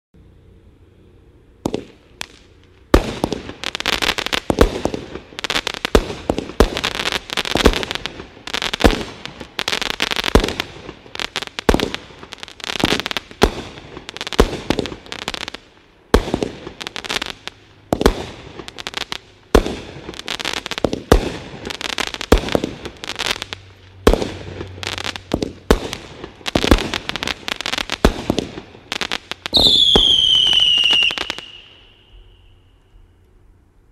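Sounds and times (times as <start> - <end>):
firework aerial bursts: 0.3 - 32.8
firework crackling: 0.9 - 33.2.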